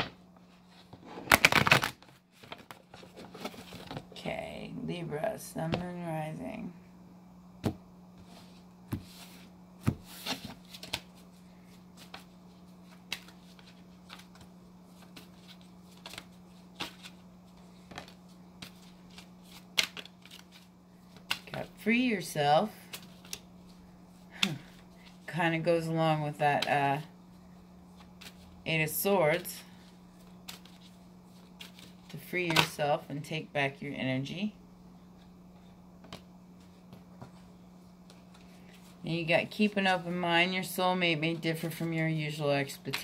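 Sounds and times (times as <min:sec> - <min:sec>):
faint low hum: 0:00.0 - 0:43.0
cards being shuffled: 0:00.6 - 0:04.1, 0:07.6 - 0:21.7, 0:22.8 - 0:25.2, 0:27.9 - 0:28.5, 0:30.2 - 0:32.8.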